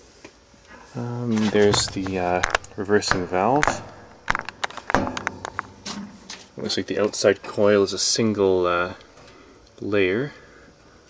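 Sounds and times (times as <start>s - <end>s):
camera knocking against tubing: 1.6s - 5.7s.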